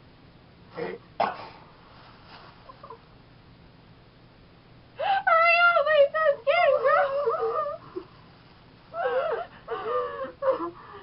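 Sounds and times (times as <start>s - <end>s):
women giggling: 6.8s - 8.1s.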